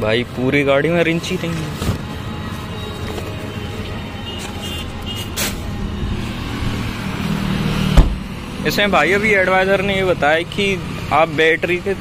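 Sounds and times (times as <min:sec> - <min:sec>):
road traffic passing: 0:00.0 - 0:12.0
loud thump: 0:07.9 - 0:08.3.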